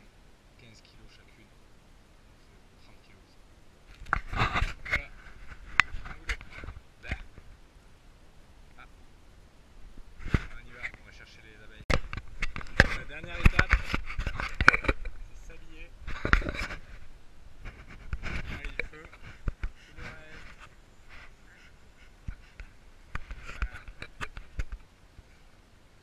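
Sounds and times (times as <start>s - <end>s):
sharp clicks knocks and scrapes: 3.9s - 7.5s, 11.9s - 15.2s, 16.0s - 17.0s, 17.6s - 21.3s, 22.0s - 24.9s.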